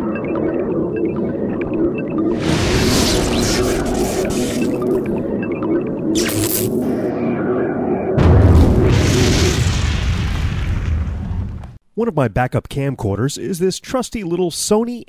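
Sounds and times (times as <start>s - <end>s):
deep boom: 8.2s - 11.8s.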